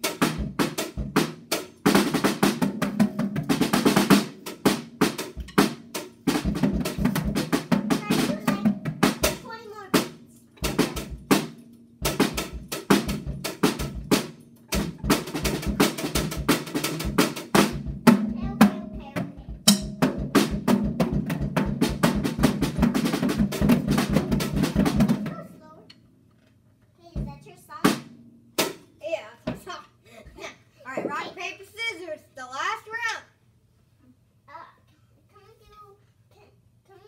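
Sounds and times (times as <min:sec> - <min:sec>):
acoustic drum kit beat: 0:00.0 - 0:26.2, 0:27.0 - 0:33.3.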